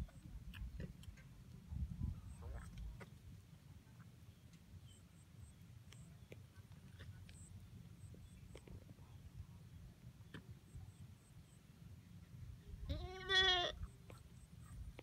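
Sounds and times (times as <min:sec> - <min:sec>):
goat bleating: 0:12.9 - 0:13.8.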